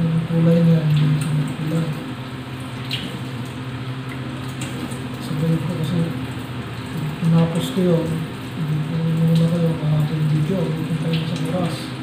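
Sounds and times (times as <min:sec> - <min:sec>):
steady low hum: 0:00.0 - 0:12.0
water drips and splashes: 0:00.0 - 0:12.0
squid being handled wet: 0:00.9 - 0:12.0.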